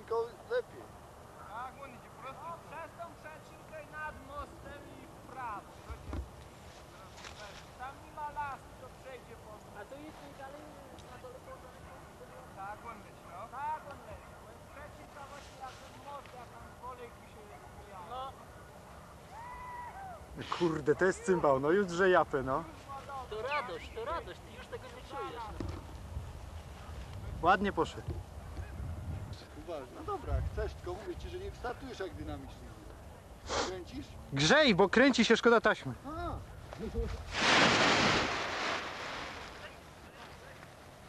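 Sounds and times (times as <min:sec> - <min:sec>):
faint steady background noise: 0:00.0 - 0:41.0
nylon canopy rustling whoosh: 0:37.1 - 0:40.2.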